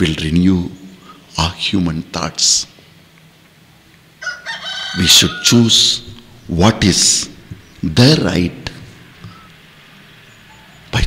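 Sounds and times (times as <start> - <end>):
rooster crowing: 4.2 - 6.0.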